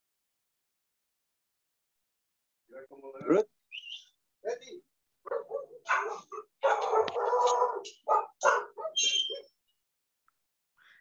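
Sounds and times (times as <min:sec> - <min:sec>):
dog barking: 0:05.2 - 0:09.6.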